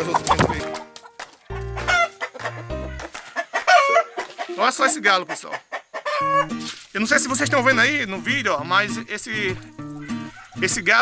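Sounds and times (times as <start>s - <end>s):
chickens clucking and squawking: 0.0s - 6.7s, 9.8s - 10.7s
loud short chicken squawk: 6.0s - 6.5s.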